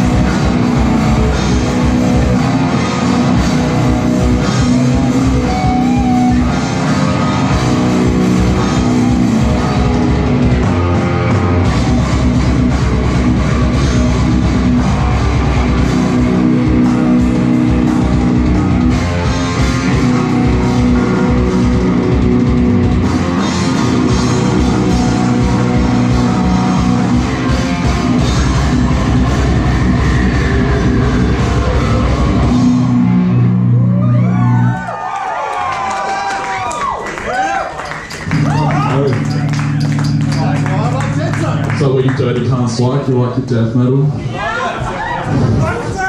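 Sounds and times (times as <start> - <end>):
heavy metal band playing: 0.0 - 34.8, 38.2 - 43.6.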